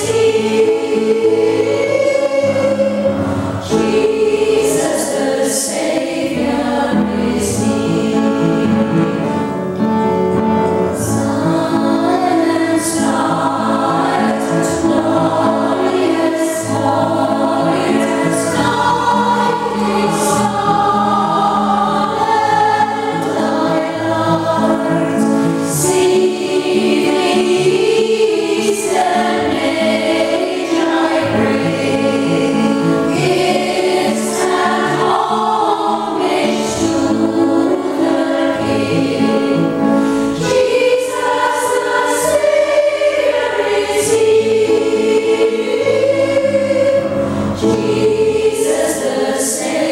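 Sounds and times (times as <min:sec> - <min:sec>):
piano accompaniment: 0:00.0 - 0:49.9
women's choir singing in harmony: 0:00.0 - 0:49.9.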